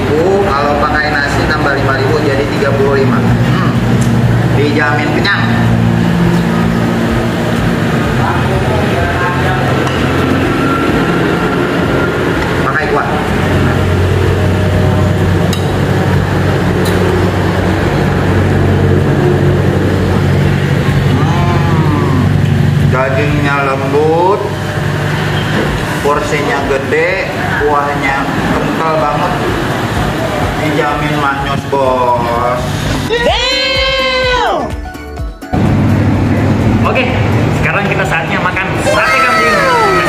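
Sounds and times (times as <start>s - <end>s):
voices: 0.0s - 34.7s, 35.6s - 40.0s.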